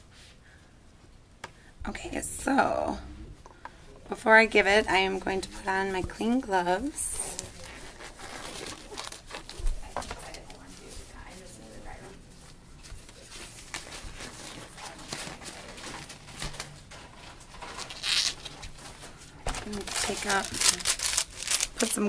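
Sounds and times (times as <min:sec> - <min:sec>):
gloves rustling and snapping: 0:15.0 - 0:22.0.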